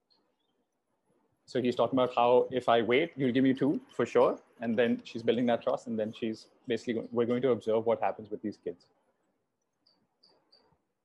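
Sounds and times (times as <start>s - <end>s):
faint high-pitched chirps: 0.0s - 0.8s, 8.6s - 11.0s.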